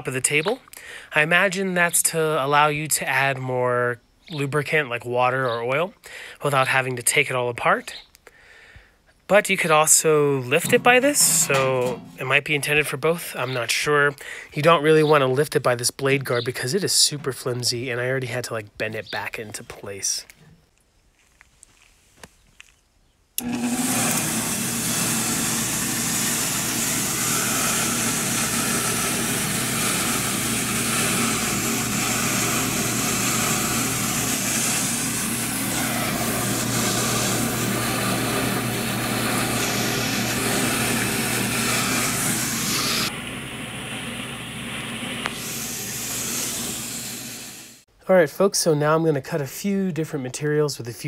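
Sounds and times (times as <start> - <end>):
saw blade spray hissing: 10.6 - 12.4, 23.5 - 43.1, 44.6 - 47.8
electric motor humming: 10.7 - 12.2, 23.4 - 47.8.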